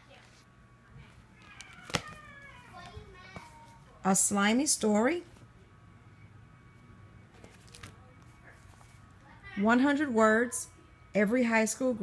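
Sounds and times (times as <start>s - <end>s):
child's voice: 1.6s - 4.0s, 9.2s - 9.8s.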